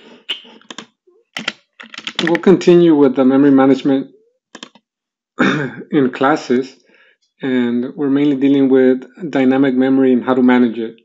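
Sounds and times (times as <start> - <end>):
computer keyboard keystrokes: 0.4 - 2.4, 4.6 - 4.8.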